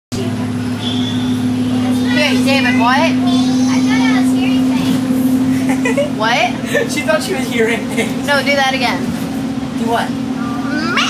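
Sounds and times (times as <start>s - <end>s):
bus engine drone: 0.1s - 11.0s.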